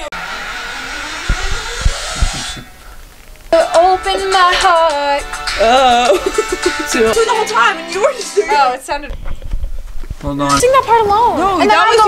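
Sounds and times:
microphone and speaker hiss: 0.0 - 12.0
microphone handling thumps: 1.1 - 3.5, 9.0 - 11.3.

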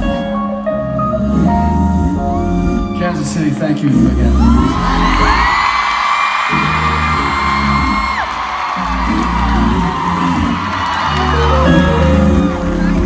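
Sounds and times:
bass line: 0.0 - 5.7, 6.4 - 13.0
crowd screaming: 4.3 - 13.0.

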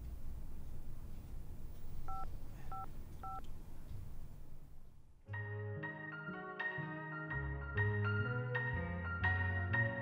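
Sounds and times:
low background hum: 0.0 - 5.3
telephone keypad beeps: 2.1 - 3.4.

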